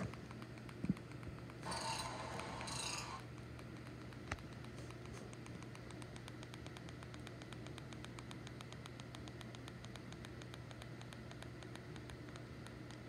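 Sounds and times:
crackle of small clicks: 0.0s - 1.6s, 3.3s - 13.0s
faint low hum: 0.0s - 13.0s.

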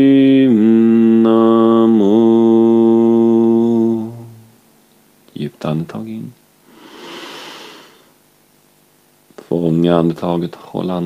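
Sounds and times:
person breathing in deeply: 6.6s - 8.2s.

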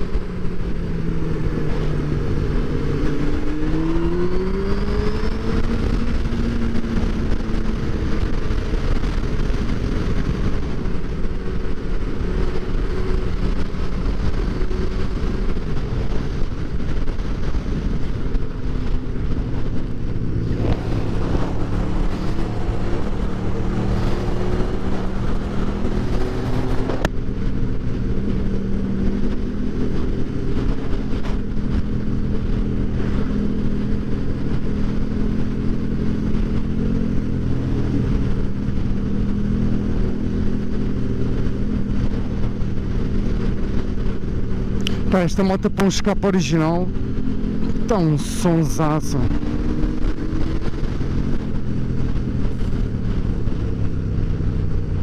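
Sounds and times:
motorcycle engine revving: 0.0s - 45.1s, 46.8s - 55.0s
wind rush: 0.0s - 55.0s.

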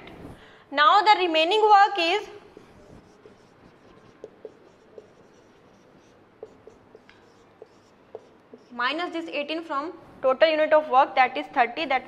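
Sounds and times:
marker squeaking on whiteboard: 2.4s - 9.2s.

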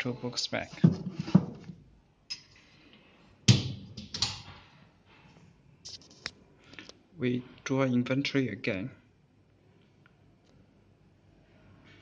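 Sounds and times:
books knocking into shelf: 0.8s - 1.8s.

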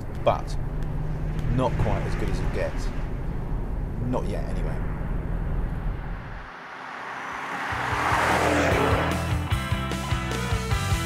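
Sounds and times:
car driving by: 0.4s - 10.7s.

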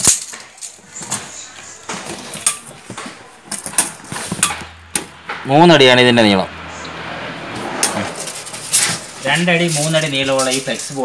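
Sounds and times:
tape measure clicking and rattling: 0.0s - 0.8s, 7.8s - 11.0s.

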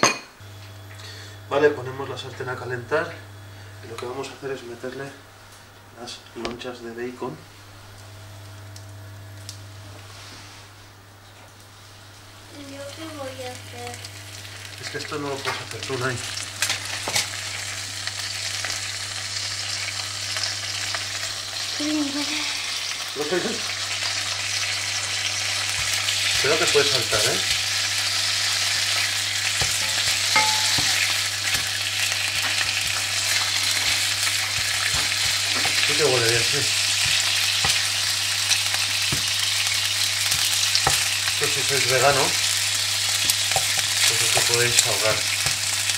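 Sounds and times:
steady low hum: 0.3s - 45.9s
bacon sizzling in hot oil: 11.8s - 45.9s
spatula tapping and scraping pan: 29.6s - 31.7s.

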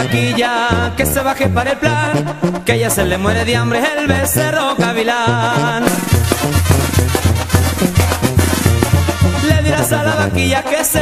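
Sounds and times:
band music with brass and drums: 0.0s - 11.0s.

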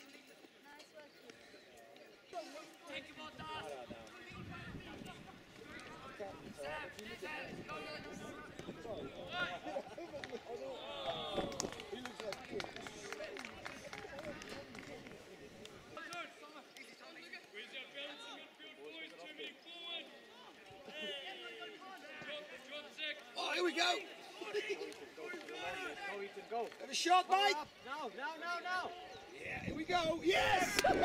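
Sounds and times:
people shouting and calling out: 2.4s - 12.3s, 17.2s - 31.0s.

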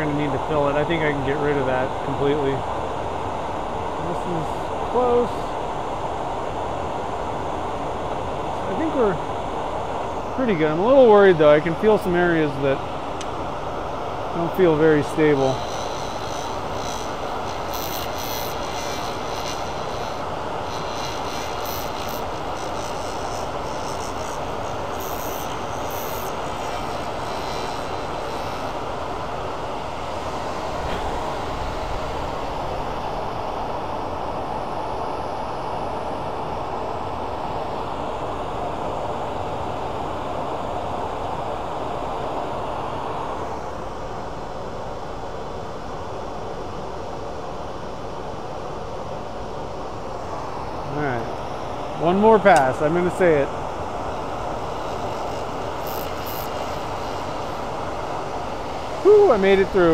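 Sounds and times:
lathe running: 14.3s - 33.6s.

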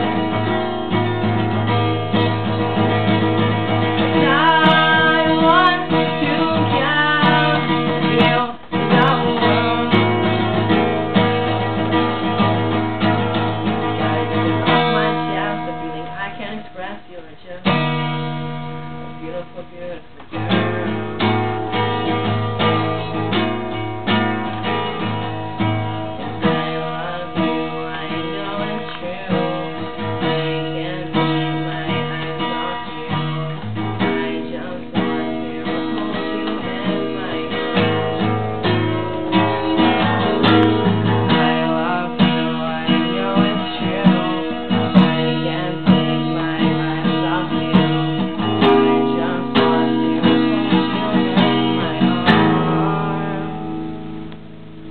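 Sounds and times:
acoustic guitar playing: 0.0s - 54.9s.

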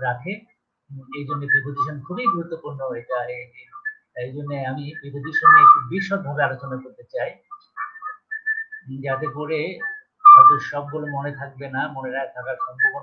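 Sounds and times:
thin whistle-like tones: 1.2s - 2.4s, 3.3s - 4.2s, 4.8s - 5.9s, 7.4s - 11.5s, 12.5s - 13.0s.

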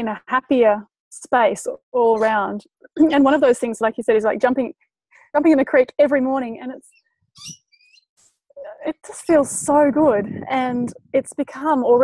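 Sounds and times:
woman speaking: 0.0s - 4.7s, 5.4s - 6.9s, 8.6s - 12.0s
high bird chirps: 6.9s - 8.2s.

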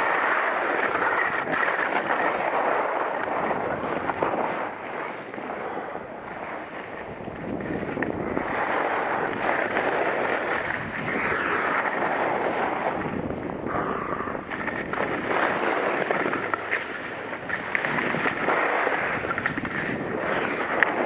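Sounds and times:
skis scraping on snow: 0.0s - 21.0s
wind on microphone: 0.0s - 21.0s.

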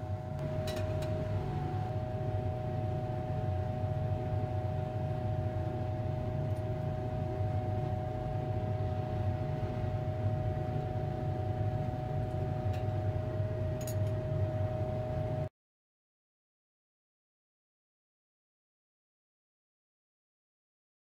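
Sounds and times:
exhaust fan drone: 0.0s - 15.5s.

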